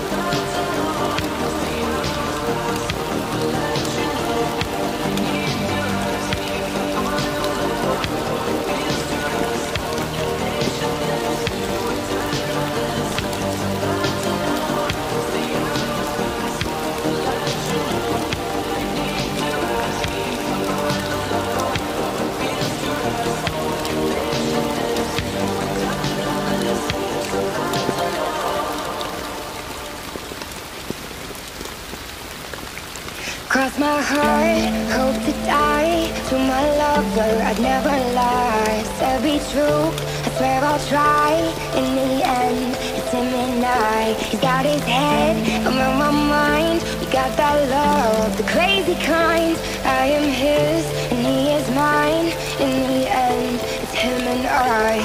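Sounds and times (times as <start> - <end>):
slow instrumental music: 0.0 - 33.4, 34.0 - 55.0
steady rain: 0.0 - 55.0.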